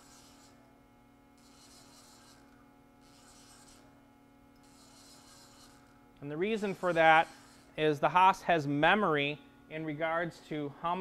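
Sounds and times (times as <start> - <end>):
faint machine hum: 0.0 - 11.0.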